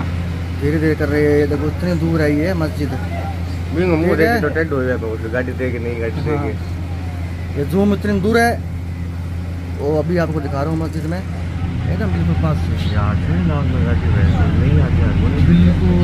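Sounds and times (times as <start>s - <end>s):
people talking: 0.0s - 16.0s
vehicle engine hum: 0.0s - 16.0s.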